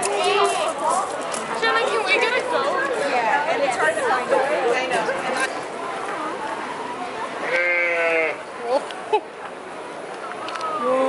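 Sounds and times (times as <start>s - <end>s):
sheep bleating: 7.4s - 8.4s.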